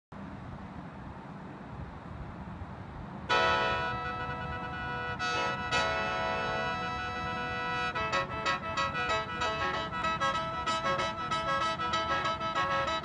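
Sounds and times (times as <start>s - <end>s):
mouth organ chord with drone: 3.3s - 13.0s.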